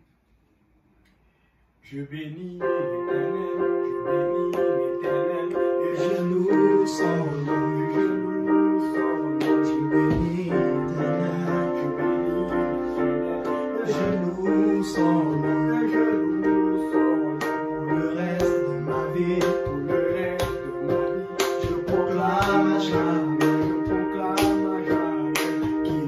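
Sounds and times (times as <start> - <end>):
electronic keyboard playing a hymn: 2.0 - 26.0.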